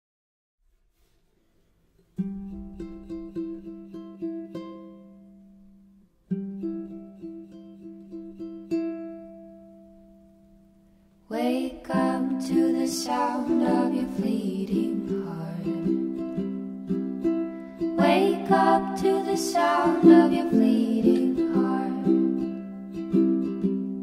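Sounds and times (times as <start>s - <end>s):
ukulele picked notes: 2.1s - 10.8s, 11.5s - 24.0s.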